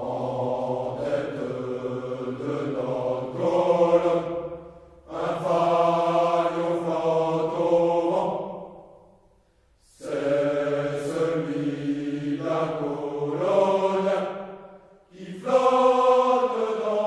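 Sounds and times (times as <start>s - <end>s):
men's choir singing: 0.0s - 9.1s, 9.9s - 17.0s.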